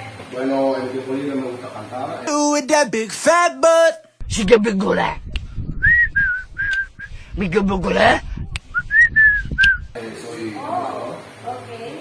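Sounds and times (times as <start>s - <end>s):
man whistling: 5.7s - 7.2s, 8.7s - 10.0s.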